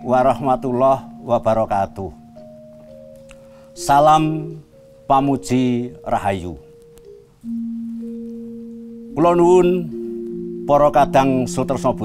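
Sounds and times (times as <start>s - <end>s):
bronze metallophone notes ringing: 0.0s - 12.0s.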